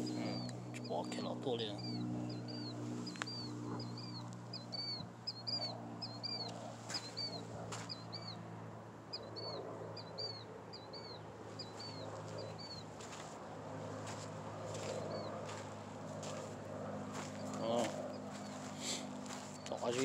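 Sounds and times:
bird chirping: 0.0 - 8.5, 9.1 - 13.3, 14.0 - 20.0
low hum: 0.0 - 20.0.

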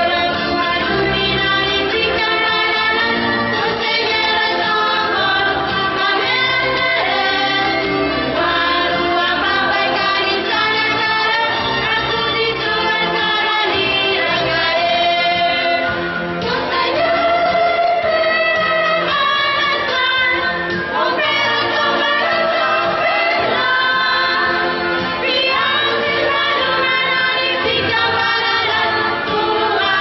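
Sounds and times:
choir singing religious song: 0.0 - 30.0.

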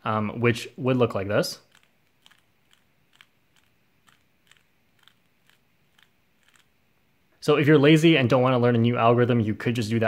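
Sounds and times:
puzzle cube clicking: 1.6 - 6.8.

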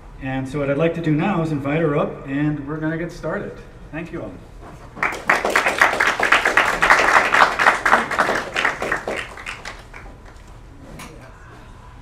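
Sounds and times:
audience applauding: 5.0 - 10.5.

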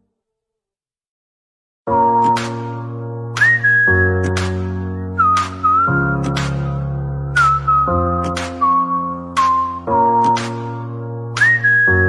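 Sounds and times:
keyboard chords: 1.9 - 12.0
whistled melody: 1.9 - 12.0.

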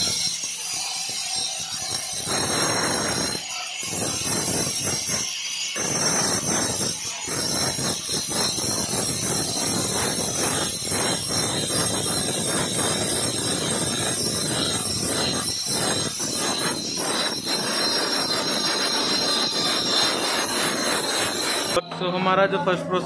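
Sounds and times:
angle grinder grinding stone: 0.0 - 21.8.

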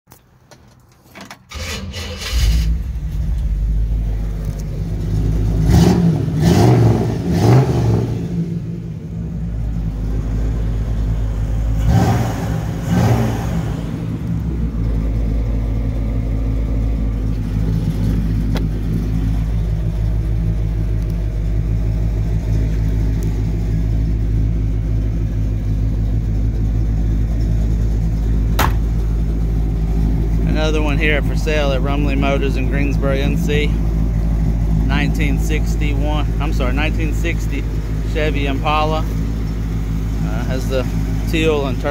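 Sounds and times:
car engine starting and revving: 1.5 - 41.9.

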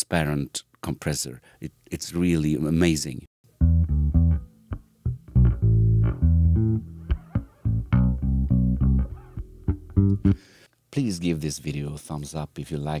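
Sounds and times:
electric bass plucked notes: 3.5 - 10.5.

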